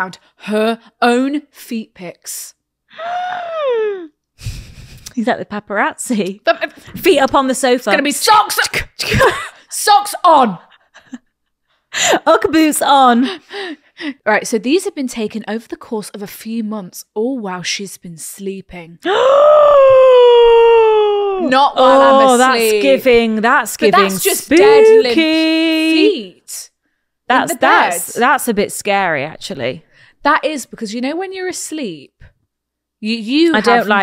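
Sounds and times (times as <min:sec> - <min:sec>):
woman crying out in shock: 0:19.1 - 0:21.5
woman exclaiming in shock: 0:19.1 - 0:22.5, 0:23.9 - 0:26.1.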